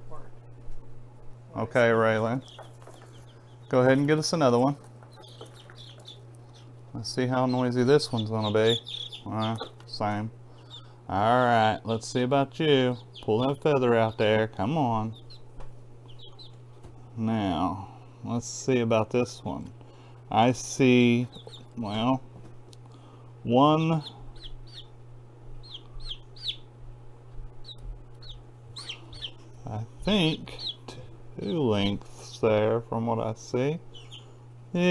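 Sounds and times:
low steady hum: 0.0s - 34.9s
chicks peeping: 1.8s - 17.9s, 20.3s - 22.2s, 23.6s - 34.9s.

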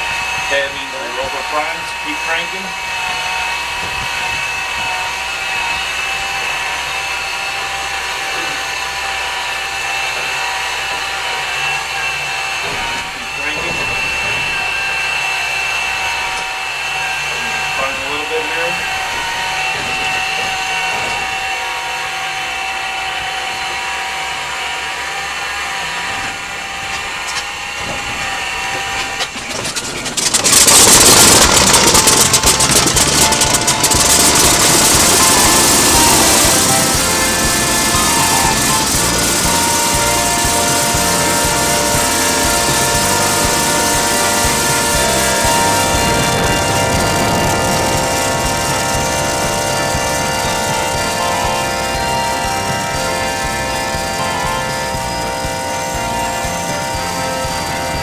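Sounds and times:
aircraft engine starter whine: 0.0s - 58.0s
radial aircraft engine running: 0.0s - 58.0s.

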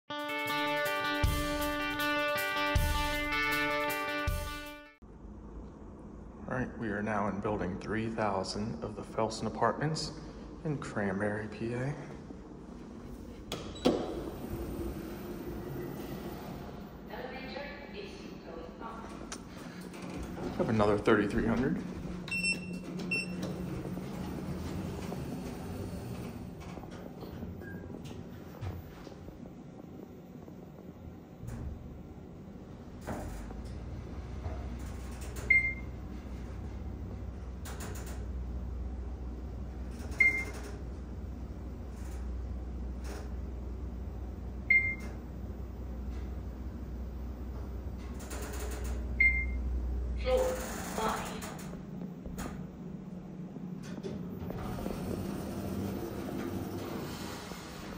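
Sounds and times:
low hum in elevator: 4.4s - 57.9s
elevator button beeps: 22.3s - 23.8s, 35.4s - 36.0s, 40.1s - 40.6s, 44.7s - 45.2s, 49.2s - 49.7s.

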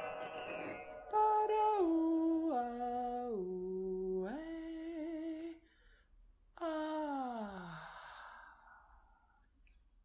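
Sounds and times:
woman singing wordless notes: 1.1s - 5.6s
breath: 5.6s - 6.2s, 7.7s - 9.5s.

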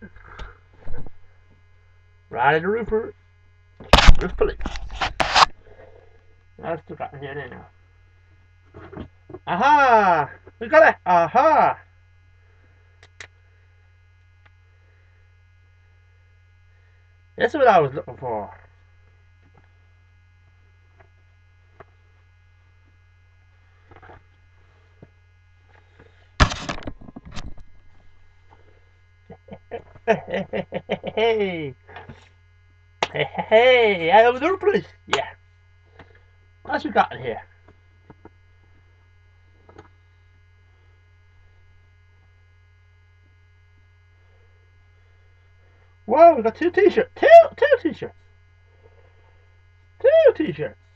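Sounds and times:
microphone handling noise: 0.0s - 1.4s, 3.8s - 6.0s, 23.7s - 29.2s
low electrical mains hum: 0.0s - 50.9s
man laughing: 9.4s - 10.4s, 29.2s - 32.1s, 33.0s - 34.3s.

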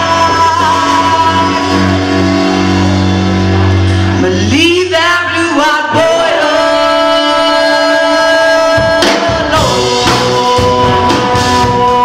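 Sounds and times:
electric guitar: 0.0s - 12.0s
live band playing: 0.0s - 12.0s.

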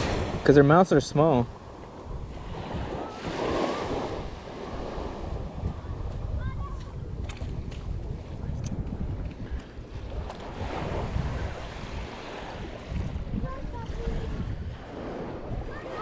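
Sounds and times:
small waves washing onto sand: 0.0s - 16.0s
wind buffeting microphone: 0.0s - 16.0s.

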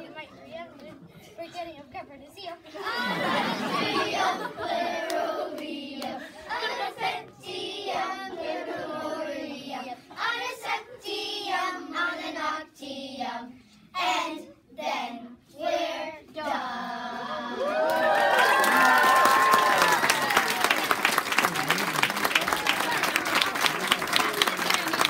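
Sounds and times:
children singing together: 2.8s - 13.5s.

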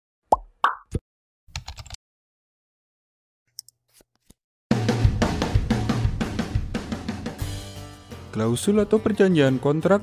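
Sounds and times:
keyboard typing clicks: 1.5s - 2.0s.

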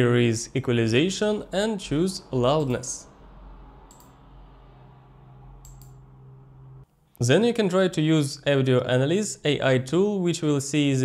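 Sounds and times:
steady low hum: 0.0s - 7.2s
mouse clicks: 3.9s - 4.2s, 5.6s - 6.0s.

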